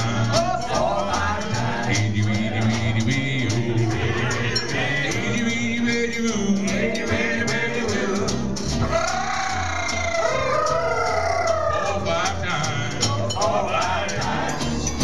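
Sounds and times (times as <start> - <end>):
acoustic jazz band playing: 0.0 - 15.0.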